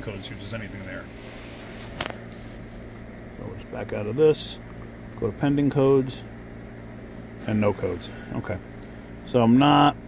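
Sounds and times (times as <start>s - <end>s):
shop background hum: 0.0s - 10.0s.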